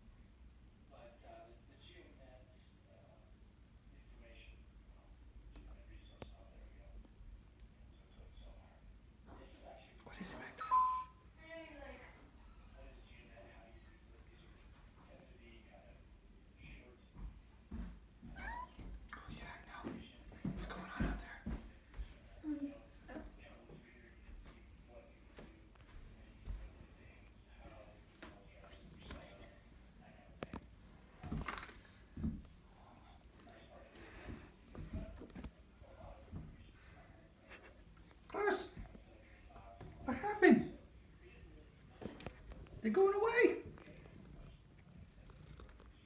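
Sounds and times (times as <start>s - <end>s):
cat meowing: 18.3s - 18.8s.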